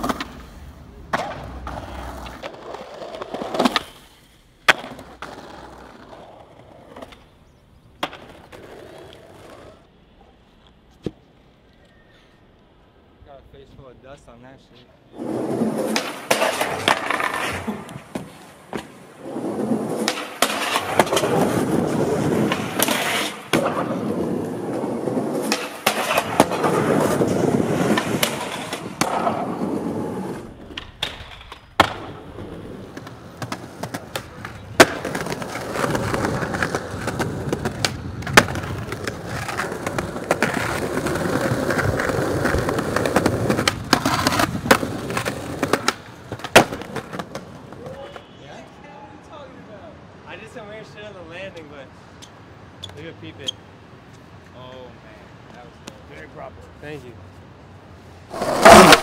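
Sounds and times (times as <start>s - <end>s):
skateboard wheels rolling on concrete: 0.0s - 59.0s
skateboard tail cracks: 1.1s - 7.3s, 8.0s - 9.8s, 15.2s - 48.3s, 58.3s - 59.0s.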